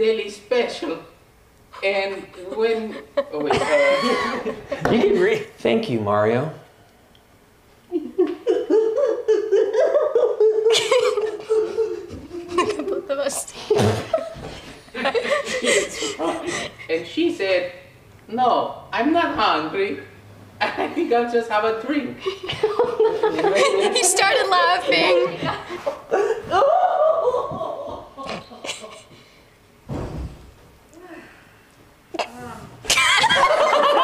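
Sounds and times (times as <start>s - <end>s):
women laughing: 1.8s - 5.4s, 7.9s - 17.0s, 22.2s - 29.2s, 32.9s - 34.0s.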